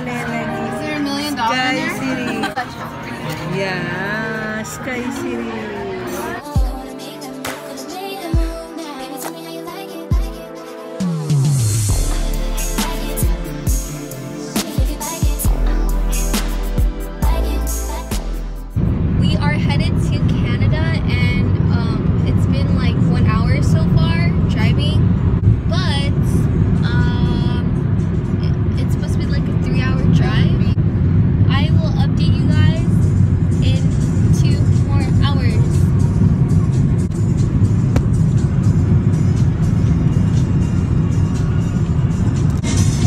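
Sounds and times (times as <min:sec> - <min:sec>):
voices: 0:00.0 - 0:09.6, 0:19.2 - 0:25.0, 0:25.7 - 0:27.8, 0:33.6 - 0:35.8
music: 0:00.0 - 0:30.8, 0:31.4 - 0:43.0
car road and engine rumble: 0:17.4 - 0:43.0.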